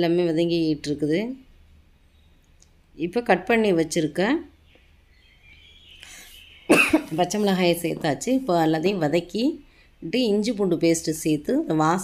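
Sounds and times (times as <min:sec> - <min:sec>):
person coughing loudly: 0:06.7 - 0:07.2.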